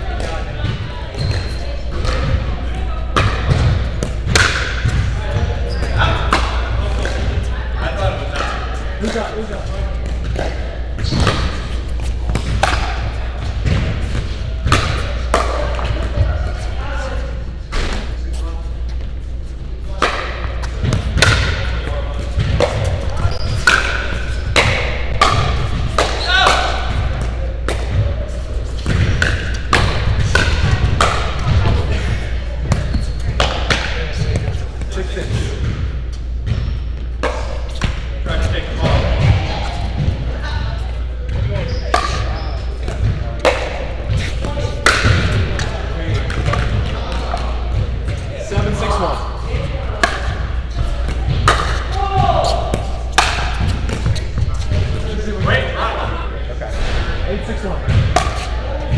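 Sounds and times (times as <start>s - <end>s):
players' voices: 0.0s - 58.9s
steady low hum: 0.0s - 58.9s
ball bouncing on hard court: 0.1s - 7.4s, 10.0s - 16.6s, 19.9s - 55.5s, 57.8s - 58.9s.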